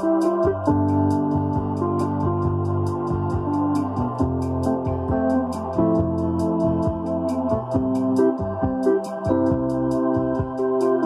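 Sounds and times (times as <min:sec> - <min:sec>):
choir sound: 0:00.0 - 0:11.0
distorted electric piano: 0:00.0 - 0:11.0
pulsing hiss: 0:00.0 - 0:11.0.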